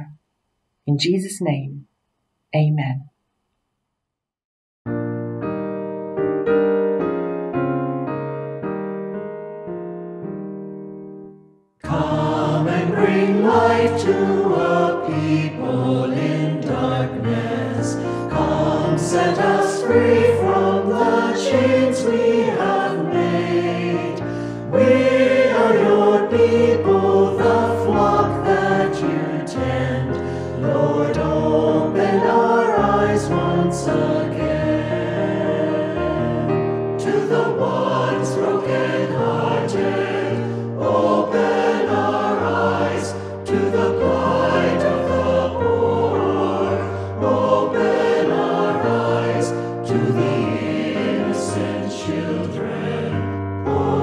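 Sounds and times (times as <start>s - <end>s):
mixed choir singing a hymn: 11.8s - 54.0s.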